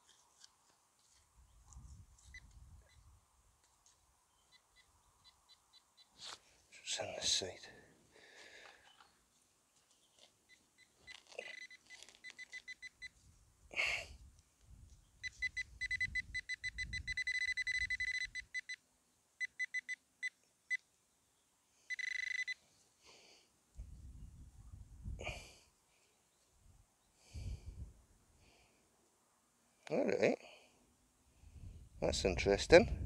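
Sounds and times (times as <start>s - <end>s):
hands rustling in soil: 0.0s - 4.3s, 6.1s - 6.7s, 8.2s - 13.4s
metal detector beeping: 2.2s - 2.6s, 10.5s - 13.2s, 15.2s - 18.8s, 19.4s - 20.4s, 21.9s - 22.6s.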